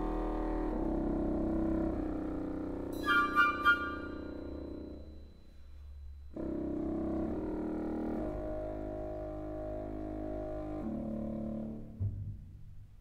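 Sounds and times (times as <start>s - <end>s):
french horns: 0.0s - 5.0s, 6.4s - 12.0s
wind ensemble playing held chords: 3.0s - 4.8s.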